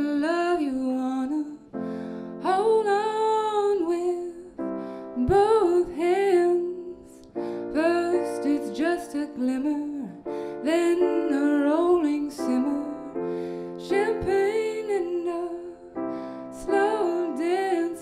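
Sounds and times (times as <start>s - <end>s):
piano chords: 0.0s - 18.0s
woman singing: 0.0s - 18.0s.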